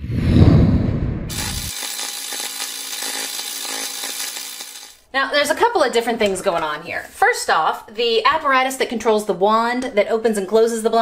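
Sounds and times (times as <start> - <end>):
buzzing machine-like drone: 1.3 - 5.0.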